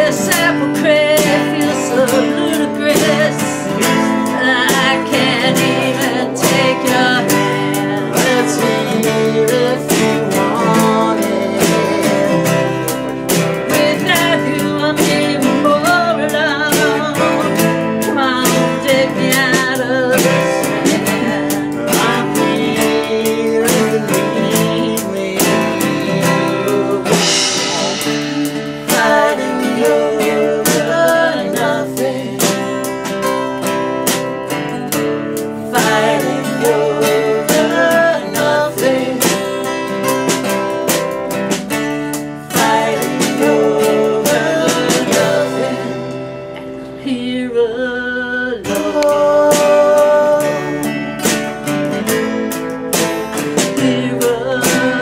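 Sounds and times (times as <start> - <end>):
person singing: 0.0 - 41.5, 42.1 - 55.0
drum kit with cymbals: 0.0 - 46.9, 49.0 - 55.0
acoustic guitars strummed: 0.0 - 55.0
cymbal wash: 27.0 - 30.2.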